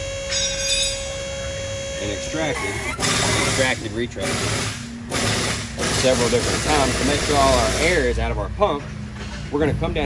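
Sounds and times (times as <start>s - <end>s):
hydraulic pump whine and hum: 0.0s - 10.0s.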